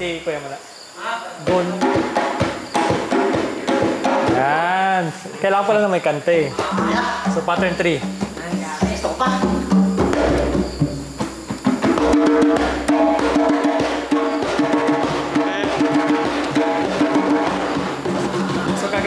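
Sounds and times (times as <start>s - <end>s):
hand drum rhythm: 1.4s - 5.2s, 6.4s - 19.0s.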